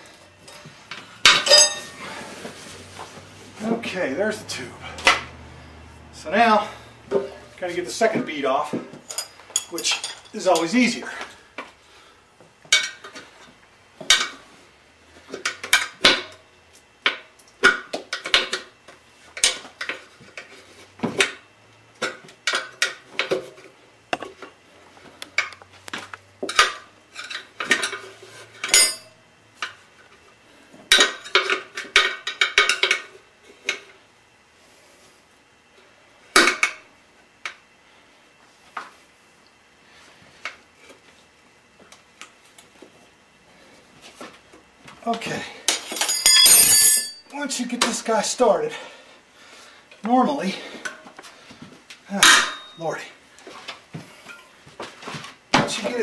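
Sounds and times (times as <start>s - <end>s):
tire irons clanking on metal rim: 1.2s - 2.2s.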